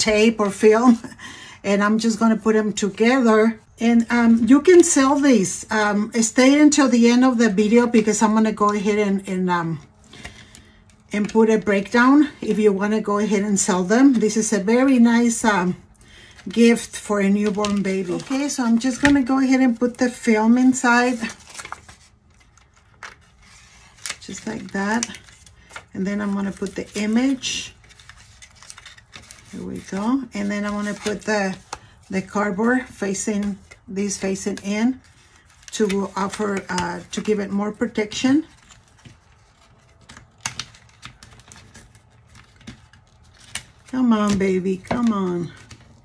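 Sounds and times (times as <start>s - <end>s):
faint rustling of plastic film: 9.7s - 46.0s
person speaking: 16.4s - 21.4s, 25.9s - 27.8s, 29.5s - 35.0s, 43.9s - 45.6s.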